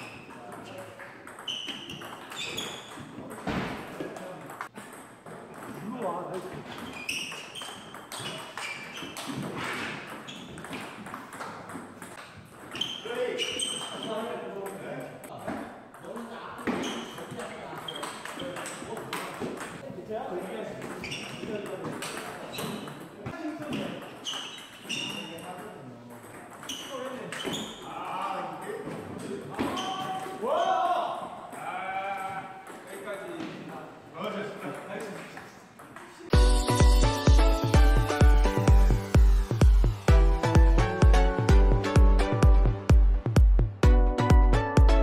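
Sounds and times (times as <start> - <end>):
ball bouncing on table: 0.5 - 12.9.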